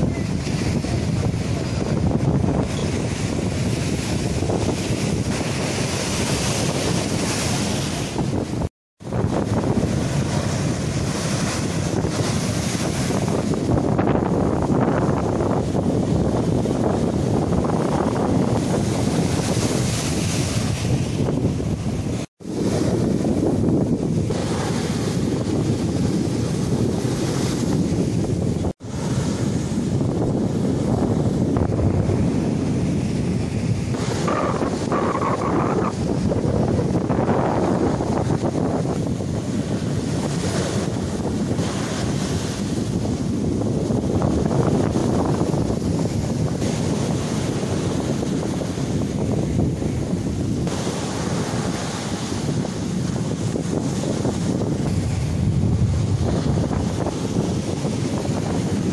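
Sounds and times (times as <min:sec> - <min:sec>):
sea surf breaking on seawall: 0:00.0 - 0:58.9
wind buffeting microphone: 0:00.0 - 0:58.9.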